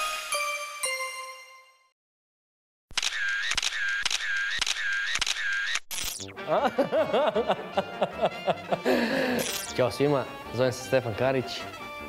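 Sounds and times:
camera shutter clicks: 3.0 - 6.2, 9.4 - 9.7.

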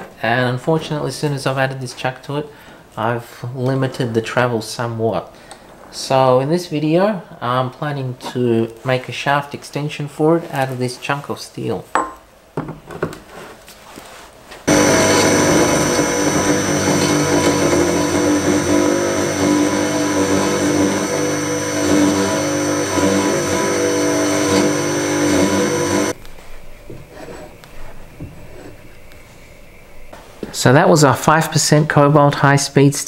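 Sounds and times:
cold saw cutting steel: 14.7 - 26.2
thin high whine: 14.7 - 28.0.

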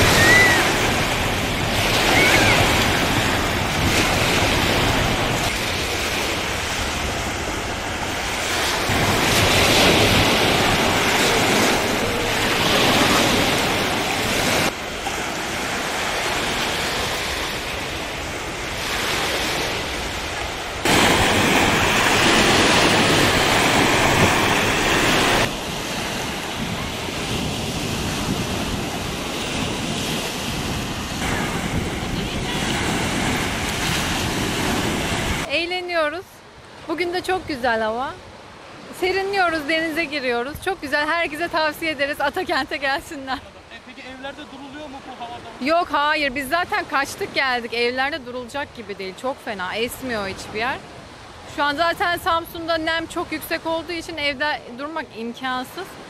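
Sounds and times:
small waves breaking on beach: 0.0 - 56.0
wind buffeting microphone: 17.2 - 35.5.

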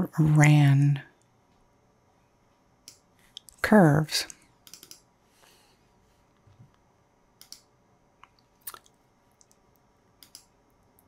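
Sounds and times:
computer mouse clicks: 2.8 - 3.6, 4.3 - 5.1, 7.4 - 9.6, 10.2 - 10.6.

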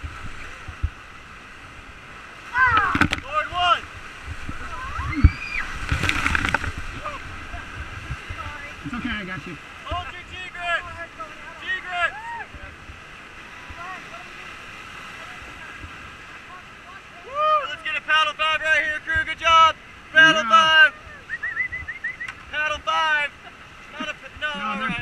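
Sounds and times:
wave splashing over boat: 0.0 - 25.0
whitewater rushing: 0.0 - 25.0
people yelling and shrieking: 2.5 - 3.6, 4.6 - 5.8, 11.6 - 12.8, 17.1 - 17.8, 20.2 - 21.4.

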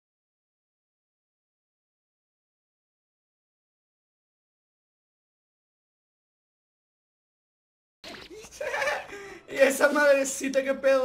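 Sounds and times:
man laughing loudly: 8.3 - 9.5.

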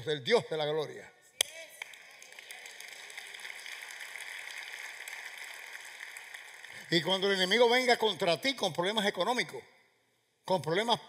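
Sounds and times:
congregation applauding: 1.8 - 9.0.

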